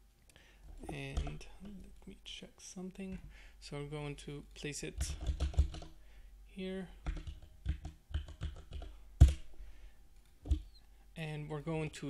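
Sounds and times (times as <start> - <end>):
computer keyboard key taps: 5.0 - 6.0, 7.0 - 9.5.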